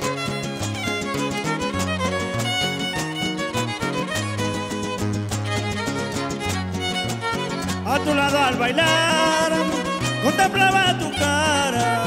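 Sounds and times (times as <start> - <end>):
strummed strings: 0.0 - 12.0
violin melody: 0.0 - 12.0
person singing: 7.8 - 12.0.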